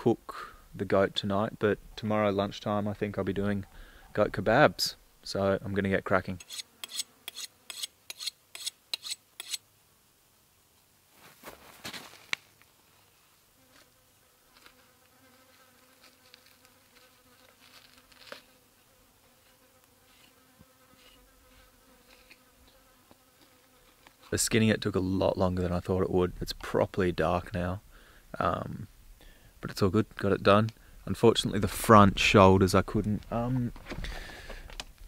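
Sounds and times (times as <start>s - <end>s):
flying insect buzzing: 6.4s - 9.6s, 13.5s - 24.3s
short sharp strokes: 6.4s - 9.6s.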